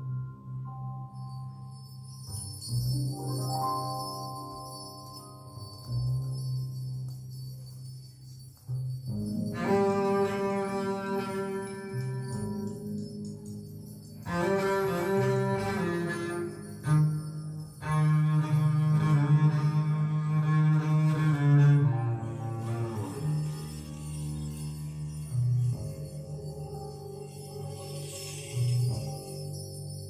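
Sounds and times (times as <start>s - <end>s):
high tinkle: 0.0s - 30.0s.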